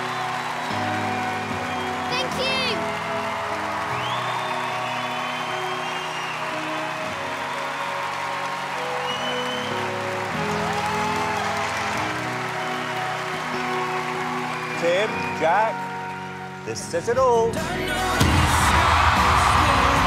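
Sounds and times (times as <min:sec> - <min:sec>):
audience applauding and cheering: 0:00.0 - 0:16.7, 0:17.8 - 0:20.0
background music: 0:00.0 - 0:20.0
whistles: 0:00.6 - 0:02.4, 0:04.0 - 0:07.9, 0:09.0 - 0:10.0, 0:13.8 - 0:15.4.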